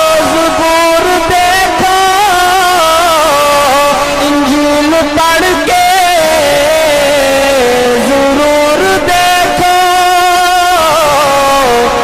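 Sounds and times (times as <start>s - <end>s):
man singing long note: 0.0s - 12.0s.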